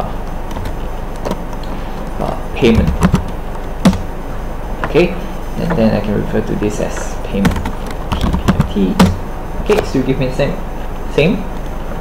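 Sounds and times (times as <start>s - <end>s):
recording hiss and hum: 0.0s - 12.0s
keyboard keystrokes: 7.4s - 9.2s.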